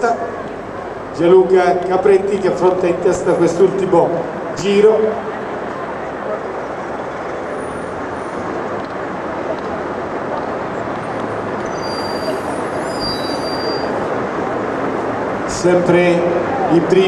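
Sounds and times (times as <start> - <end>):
skate wheels rolling on road: 5.3 - 15.4.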